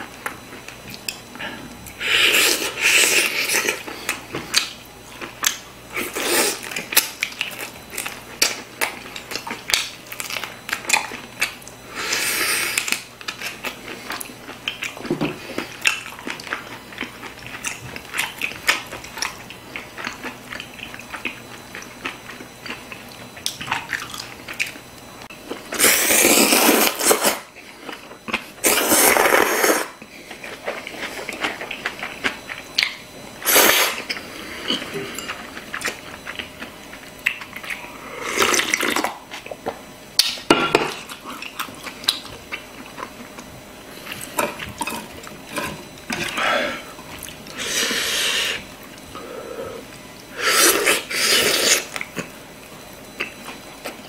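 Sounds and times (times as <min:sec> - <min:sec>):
close-up chewing and biting: 0:12.7 - 0:24.9, 0:33.8 - 0:46.4.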